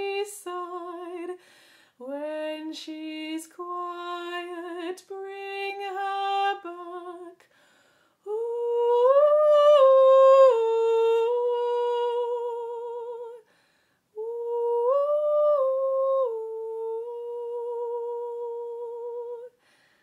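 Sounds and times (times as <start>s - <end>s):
woman singing unaccompanied: 0.0s - 1.4s, 2.0s - 7.5s, 8.2s - 13.5s, 14.1s - 19.6s.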